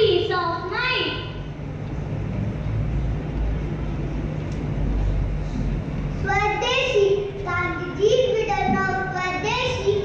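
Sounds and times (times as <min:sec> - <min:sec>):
large hall background rumble: 0:00.0 - 0:10.0.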